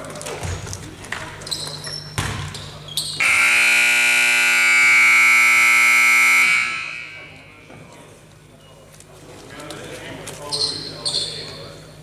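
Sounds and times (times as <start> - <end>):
sneakers squeaking: 0.1 - 3.3, 10.4 - 12.0
basketball thudding on hardwood floor: 2.2 - 2.5
scoreboard buzzer: 3.2 - 7.6.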